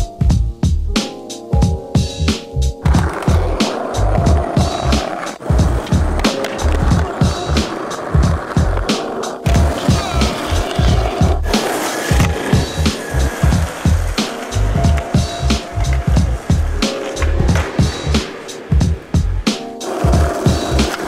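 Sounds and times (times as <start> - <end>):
music with bass beat: 0.0 - 1.0, 1.6 - 21.0
skateboard wheels rolling on pavement: 1.6 - 21.0.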